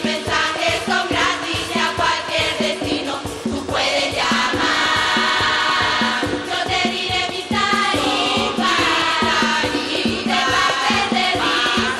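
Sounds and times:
steady drum beat: 0:00.0 - 0:11.9
women's choir singing: 0:00.0 - 0:11.9.

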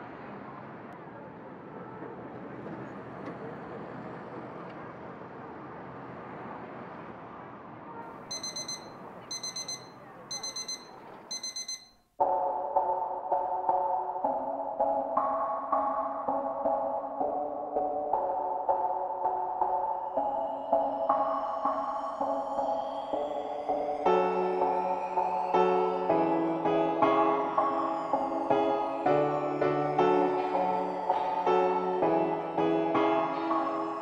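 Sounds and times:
phone alarm beeping: 0:08.3 - 0:12.0
slow ambient keyboard music: 0:08.3 - 0:34.0.

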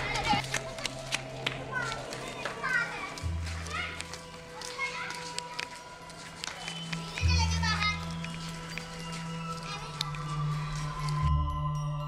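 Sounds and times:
children calling out: 0:00.0 - 0:11.3.

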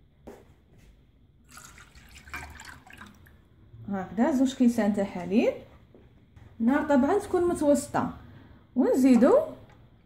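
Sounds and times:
milk pouring into a saucepan: 0:01.4 - 0:03.5.

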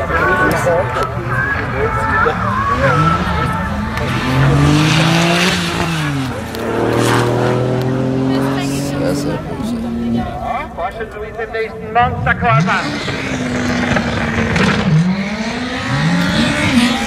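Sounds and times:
sports car engine revving: 0:00.0 - 0:10.6, 0:12.1 - 0:17.0.

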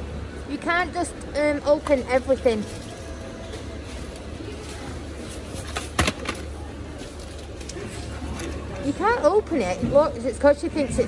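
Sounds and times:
low shop hum: 0:00.0 - 0:11.0.

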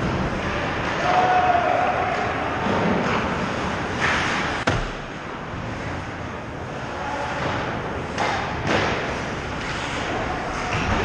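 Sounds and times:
skate scrape: 0:02.6 - 0:04.7, 0:09.1 - 0:11.0.

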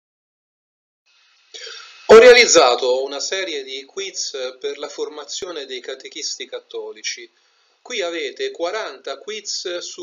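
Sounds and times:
faint recording hiss: 0:01.1 - 0:10.0
man speaking: 0:01.6 - 0:10.0.

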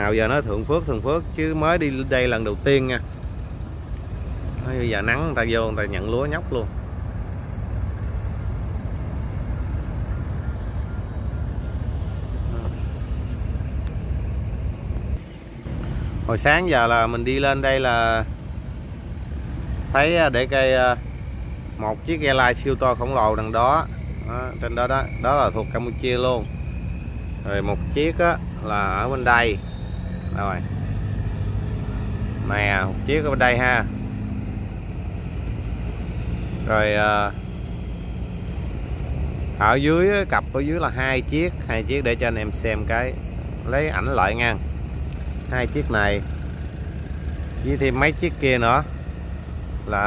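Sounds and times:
boat engine rumbling: 0:00.0 - 0:50.0.

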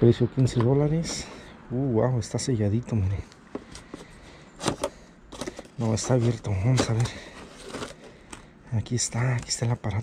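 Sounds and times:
rustle of handling: 0:03.4 - 0:08.5.

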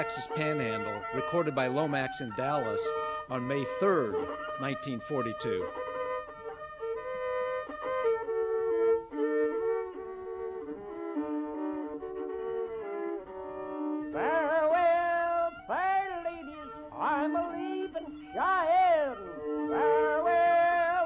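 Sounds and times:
fiddle playing slow melody: 0:00.0 - 0:21.0.

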